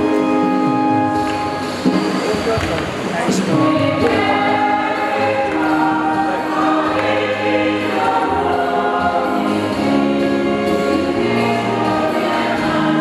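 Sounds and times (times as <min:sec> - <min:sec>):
choir singing a hymn: 0:03.3 - 0:13.0.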